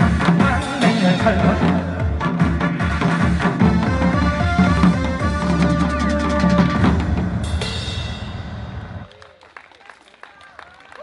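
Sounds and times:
backing track: 0.0 - 9.1.

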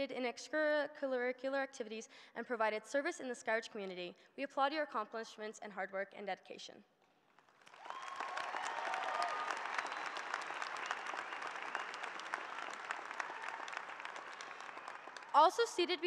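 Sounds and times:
crowd applauding: 7.4 - 16.0.

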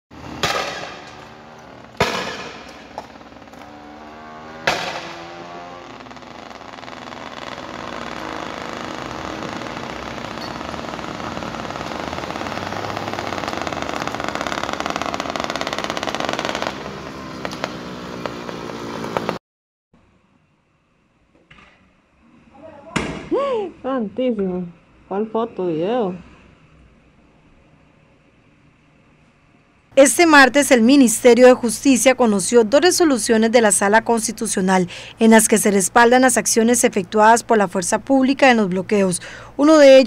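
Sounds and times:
vehicle engine: 0.1 - 19.4
loud ringing bangs: 0.3 - 3.6, 4.6 - 12.7.

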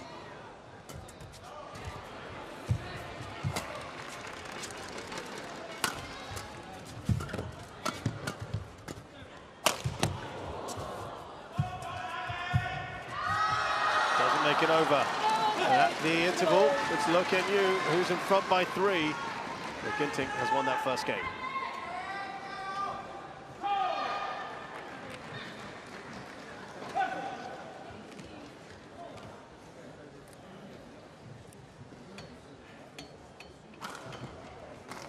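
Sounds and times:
racket hitting shuttlecock: 9.6 - 10.2
crowd cheering and shouting: 13.1 - 22.5.

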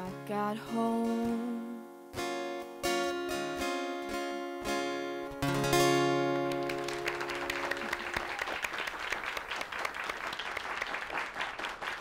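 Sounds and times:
acoustic guitar chord ringing: 0.0 - 8.1
audience applause: 6.4 - 12.0.

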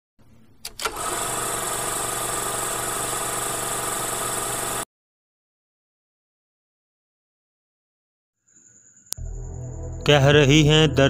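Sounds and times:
motor starting clicks: 0.6 - 4.8
motor running: 0.8 - 4.8.

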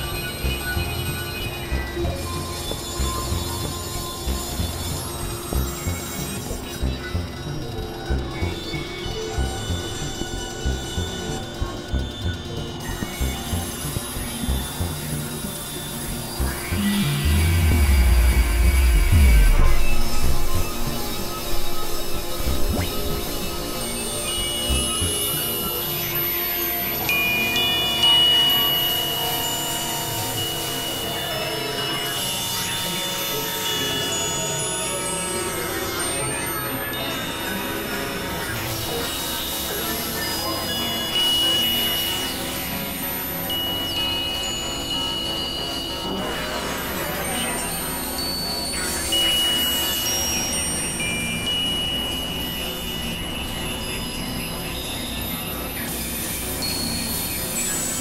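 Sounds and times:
electronic drone of overlapping tones: 0.0 - 58.0
high pure tones: 15.5 - 26.4
hiss and rumble drone: 16.2 - 24.9.

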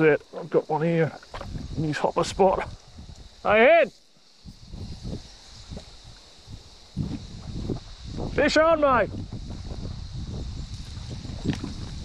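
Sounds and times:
high hiss of river ambience: 0.0 - 12.0.

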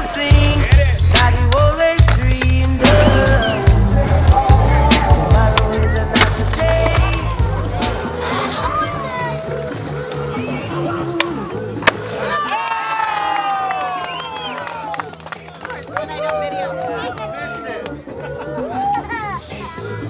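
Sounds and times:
music with heavy bass: 0.0 - 12.2
skateboard wheels rolling on concrete: 0.0 - 20.0
skateboard popping and landing: 5.4 - 8.7, 11.2 - 12.3.

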